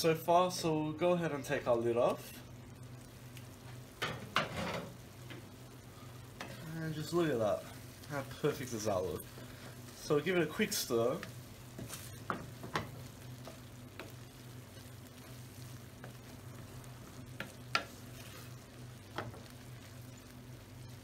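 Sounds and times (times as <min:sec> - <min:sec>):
faint steady sizzle: 0:00.0 - 0:21.0
spatula stirring beans in a pan: 0:02.0 - 0:21.0
spatula scraping a skillet: 0:17.2 - 0:19.6.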